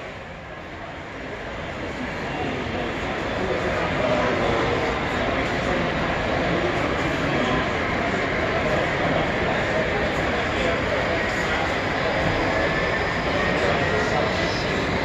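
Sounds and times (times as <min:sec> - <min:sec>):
crowd chatter in echoing hall: 0:00.0 - 0:15.0.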